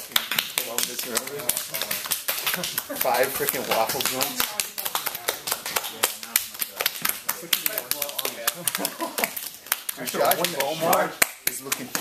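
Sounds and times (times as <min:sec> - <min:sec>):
hands slapping bare skin: 0:00.0 - 0:12.0.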